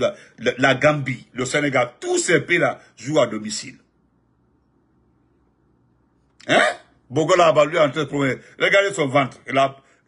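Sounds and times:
man's loud spoken interjection: 0:06.4 - 0:07.9.

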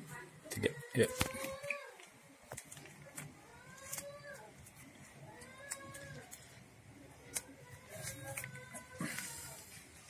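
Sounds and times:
foil balloon crinkling: 0:01.0 - 0:10.0.

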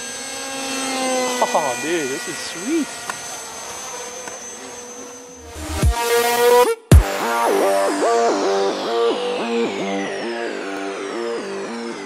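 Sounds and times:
electric motor whine in flight: 0:00.0 - 0:12.0
electronic intro music: 0:05.4 - 0:12.0.

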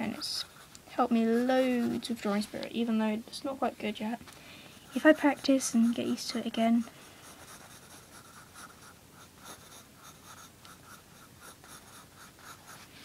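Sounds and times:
pencil scratching on paper: 0:00.0 - 0:02.7, 0:04.7 - 0:13.0.

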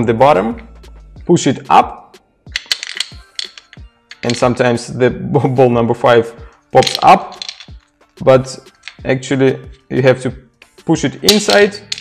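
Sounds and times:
soft background music: 0:00.0 - 0:12.0
wooden balls clicking: 0:02.5 - 0:04.5, 0:06.8 - 0:07.9, 0:08.6 - 0:09.1, 0:11.2 - 0:12.0.

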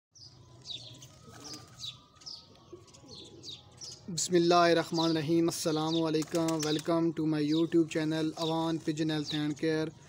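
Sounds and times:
bird chirping: 0:00.1 - 0:10.0.

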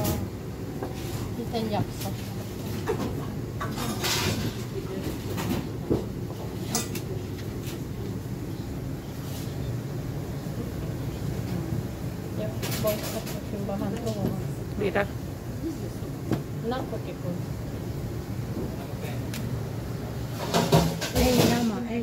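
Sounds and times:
low kitchen rumble: 0:00.0 - 0:22.0.

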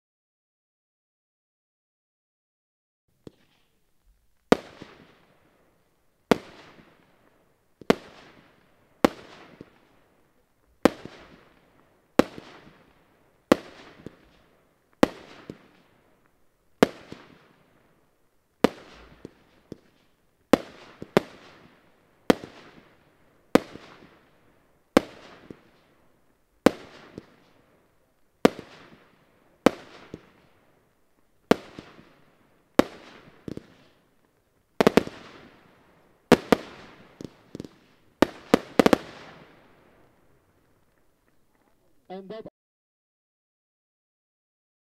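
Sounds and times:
firework bangs with crackling: 0:03.2 - 0:03.8, 0:04.4 - 0:41.3.

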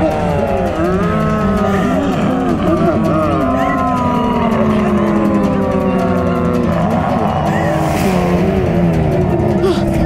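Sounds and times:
eerie held tones: 0:00.0 - 0:10.0
wavering voice-like sounds: 0:00.0 - 0:10.0.

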